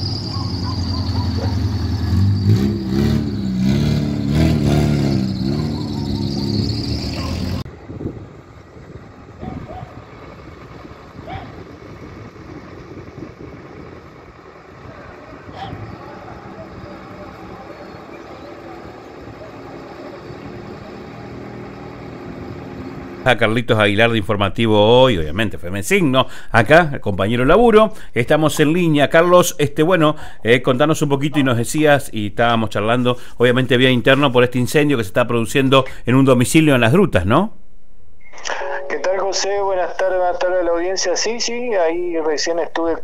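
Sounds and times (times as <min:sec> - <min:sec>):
vehicle engine running: 0:00.0 - 0:31.8
outdoor ambience: 0:00.0 - 0:43.0
raised voices: 0:13.8 - 0:22.0
faint voices: 0:14.0 - 0:22.0.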